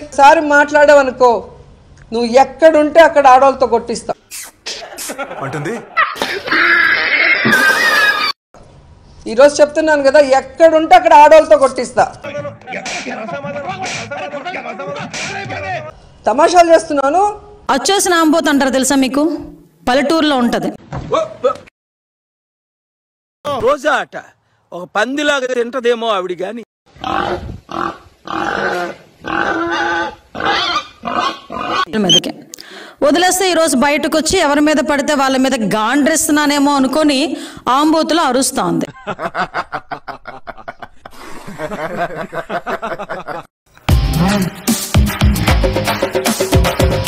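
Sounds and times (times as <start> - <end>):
pig squealing: 6.0 - 8.3, 27.0 - 32.2.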